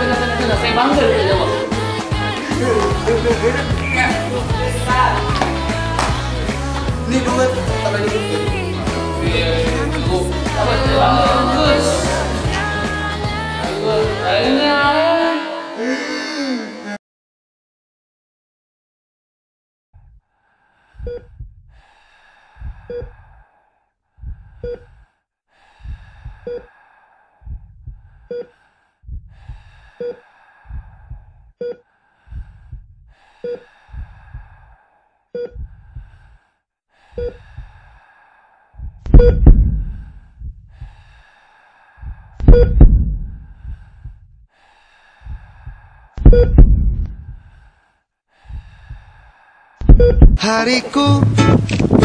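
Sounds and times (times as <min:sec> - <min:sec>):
breathing: 0:20.2 - 0:39.0, 0:39.7 - 0:42.5, 0:43.3 - 0:46.3, 0:47.1 - 0:49.9
heartbeat double thump: 0:21.0 - 0:21.7, 0:27.5 - 0:28.1, 0:29.1 - 0:29.4, 0:35.4 - 0:35.8, 0:38.8 - 0:40.8, 0:42.4 - 0:44.3, 0:46.2 - 0:47.4, 0:49.8 - 0:50.4, 0:51.2 - 0:52.0.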